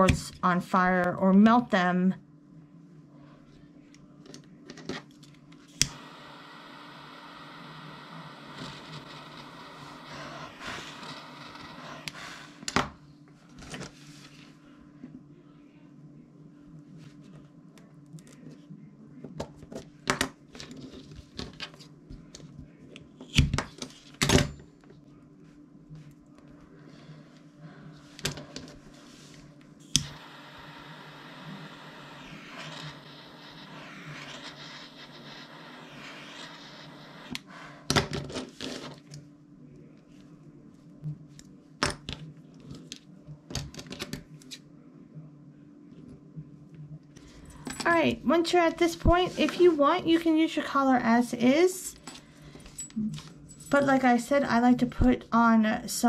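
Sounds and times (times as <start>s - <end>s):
steady low hum: 0.0s - 38.1s.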